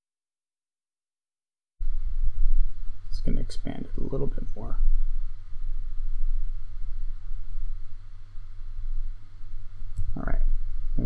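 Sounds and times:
faint hiss: 0:01.8 - 0:11.0
low hum: 0:01.8 - 0:11.0.

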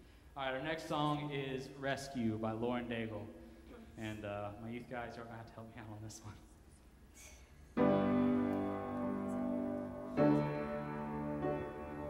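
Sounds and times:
grand piano chord ringing: 0:07.8 - 0:12.0.

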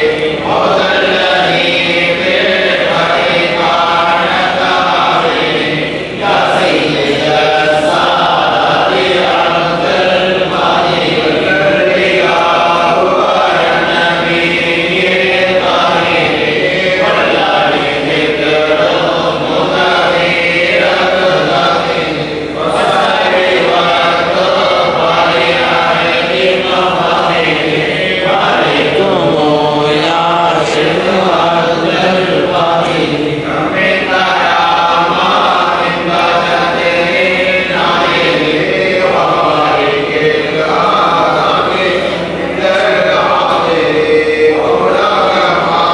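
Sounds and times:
men chanting in unison: 0:00.0 - 0:45.9.

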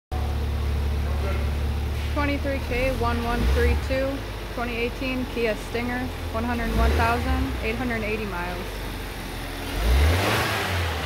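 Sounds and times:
car engine idling: 0:00.1 - 0:11.0.

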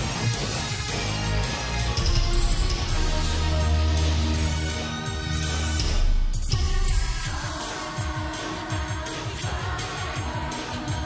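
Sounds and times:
band with driving low beat: 0:00.0 - 0:11.0
woman singing pop song: 0:06.4 - 0:11.0.

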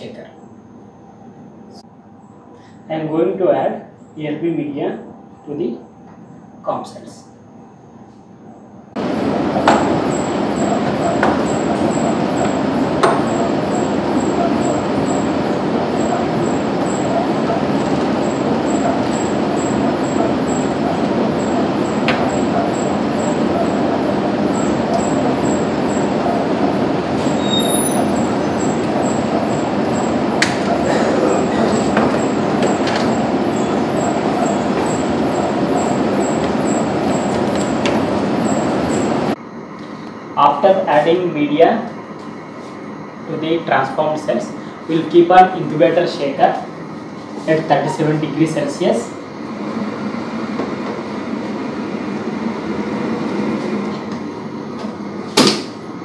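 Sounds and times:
blower rushing air: 0:08.9 - 0:56.0.

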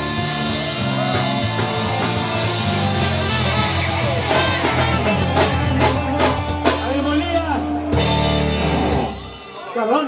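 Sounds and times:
drums: 0:00.0 - 0:10.0
live rock band playing: 0:00.0 - 0:10.0.

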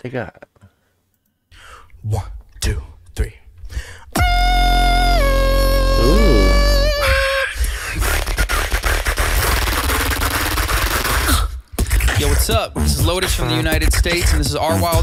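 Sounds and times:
deep sub-bass: 0:04.2 - 0:07.2
beatboxing: 0:04.2 - 0:15.0
synth-like vocal tone: 0:05.9 - 0:07.0.

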